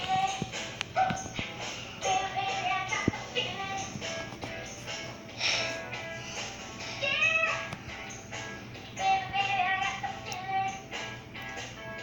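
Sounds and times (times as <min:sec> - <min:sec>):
television music: 0:00.0 - 0:12.0.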